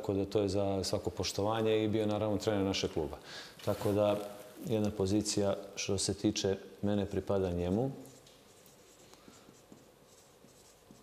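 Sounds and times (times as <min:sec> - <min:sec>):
marker scratching on board: 0:08.1 - 0:11.0.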